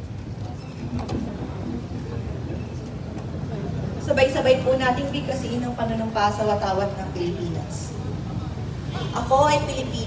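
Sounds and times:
faint distant voices: 0.0s - 10.0s
low rumble of road traffic: 0.0s - 10.0s.

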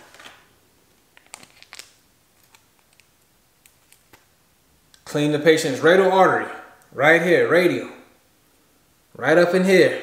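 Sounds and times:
packet rustling: 0.0s - 0.5s, 1.1s - 4.3s
foil packet tearing: 1.2s - 3.0s.

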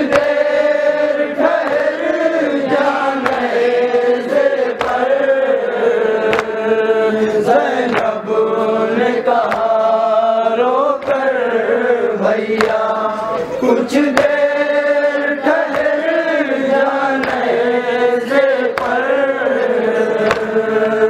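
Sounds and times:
chest-beating slaps: 0.0s - 0.5s, 3.2s - 3.7s, 4.6s - 5.2s, 6.2s - 6.7s, 7.8s - 8.2s, 9.4s - 9.8s, 11.0s - 11.3s, 12.5s - 12.9s, 14.1s - 14.4s, 15.6s - 16.1s, 17.2s - 17.5s, 18.7s - 20.6s
men chanting a lament: 0.0s - 21.0s.

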